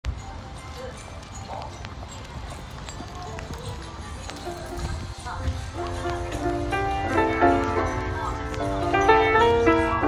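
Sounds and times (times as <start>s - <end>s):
lo-fi christmas beat music: 0.1s - 10.0s
scattered microphone clicks: 1.1s - 6.8s.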